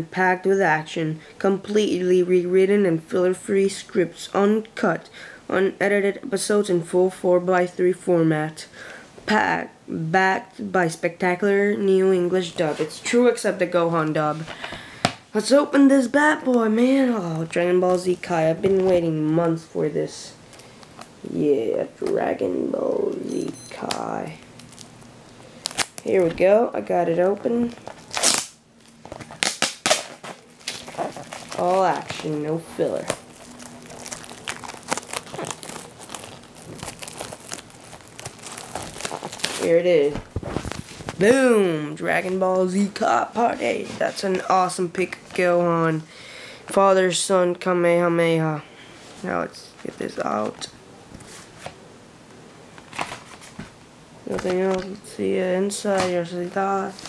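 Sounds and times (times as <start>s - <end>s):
plastic packaging crinkling: 23.8s - 26.4s, 27.2s - 41.2s
faint plastic rustling: 30.1s - 41.3s.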